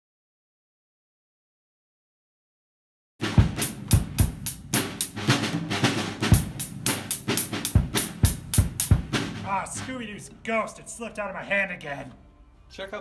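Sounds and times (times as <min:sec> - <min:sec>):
drum kit groove: 0:03.2 - 0:10.6.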